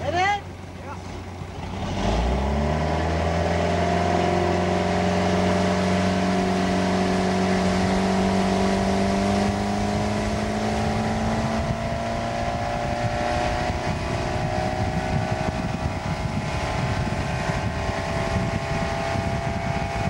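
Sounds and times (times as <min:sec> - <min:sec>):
motorboat engine at full throttle: 0:00.0 - 0:20.0
rushing water and spray: 0:00.4 - 0:20.0.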